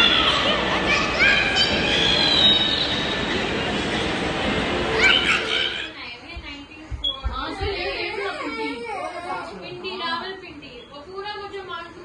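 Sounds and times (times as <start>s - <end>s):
busy indoor play area noise: 0.0s - 12.0s
high-pitched squeals: 1.3s - 3.5s.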